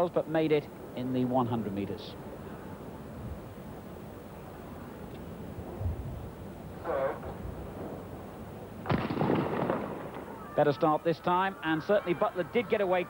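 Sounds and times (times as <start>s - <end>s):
starter's pistol shot: 8.9s - 10.2s.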